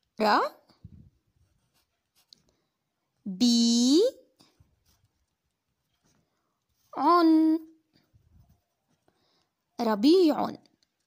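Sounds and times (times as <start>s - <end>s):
pencil scratching on paper: 1.3s - 2.5s.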